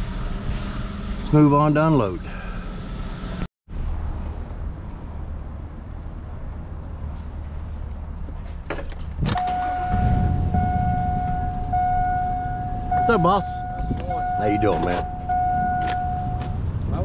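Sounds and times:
electronic beeps: 0:09.4 - 0:16.6.

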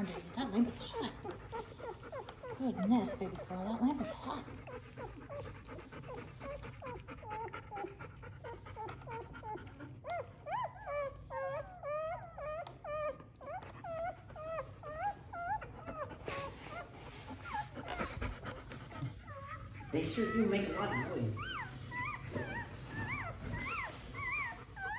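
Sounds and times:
puppies crying and whining: 0:00.0 - 0:24.9.

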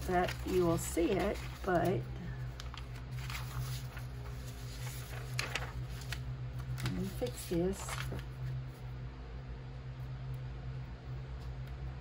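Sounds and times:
paper rustling: 0:00.0 - 0:08.8
low hum: 0:00.0 - 0:12.0.

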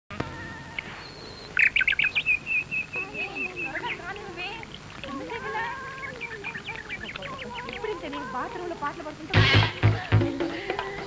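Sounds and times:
birds chirping: 0:00.1 - 0:11.0.

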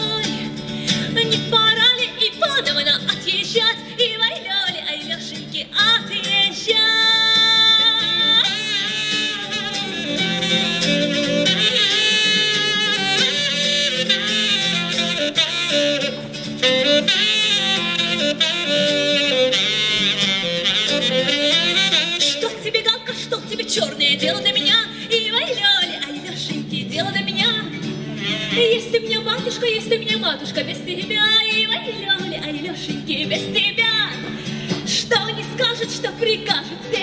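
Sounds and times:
acoustic guitar accompaniment: 0:00.0 - 0:37.0
saxophone playing a melody: 0:07.1 - 0:22.9.

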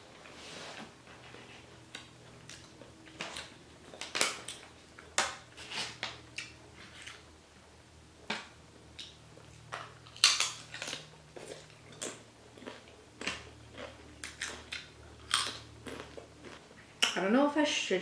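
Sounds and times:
crunching and chewing chips: 0:01.2 - 0:07.3, 0:08.3 - 0:17.2.

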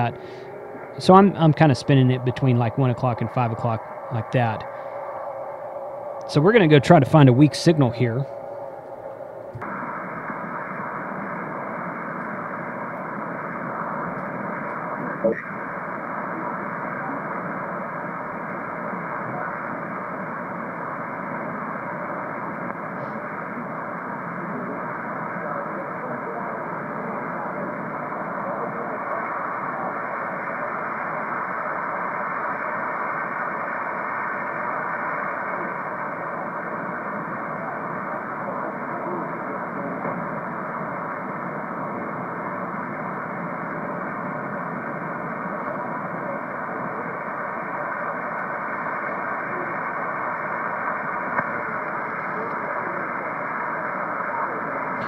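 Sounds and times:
radio static: 0:00.0 - 0:55.0
weak voice in static: 0:00.0 - 0:55.0.

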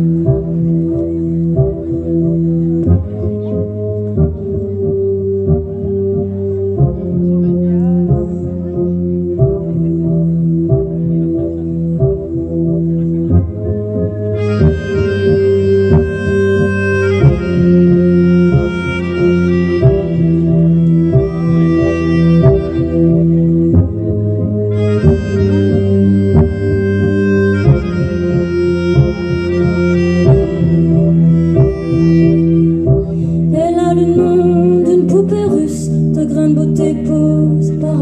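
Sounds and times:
electronic backing track: 0:00.0 - 0:38.0
melodica melody: 0:14.3 - 0:23.2, 0:24.7 - 0:33.1
person singing: 0:33.5 - 0:38.0.

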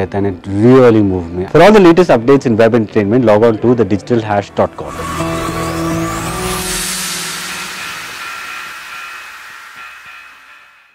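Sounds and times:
held tones: 0:04.5 - 0:10.9
rising whoosh: 0:04.7 - 0:10.9.

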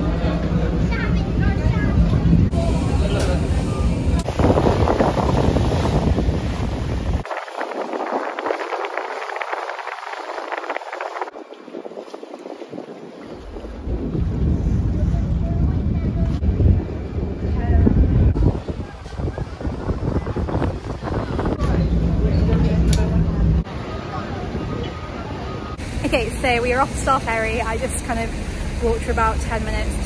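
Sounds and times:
deep rumble: 0:00.0 - 0:11.4, 0:13.3 - 0:30.0
water noise: 0:00.0 - 0:30.0
wind on microphone: 0:00.0 - 0:30.0.

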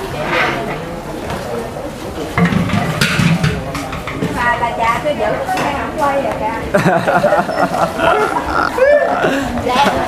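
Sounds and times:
pots and bowls clattering: 0:02.4 - 0:04.2
voices talking: 0:03.7 - 0:10.0.

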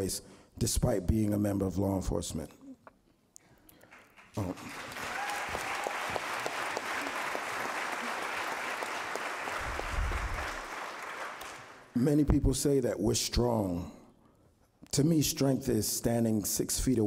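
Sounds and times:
audience applauding: 0:03.9 - 0:11.9.

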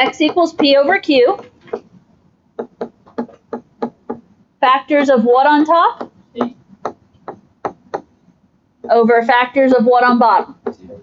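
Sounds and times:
stylus tapping on tablet screen: 0:00.0 - 0:04.4, 0:05.6 - 0:09.1.

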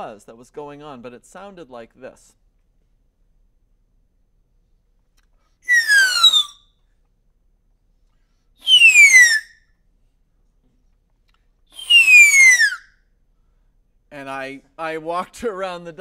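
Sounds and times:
falling whistles from a straw: 0:05.6 - 0:06.8, 0:08.6 - 0:09.7, 0:11.7 - 0:13.1.

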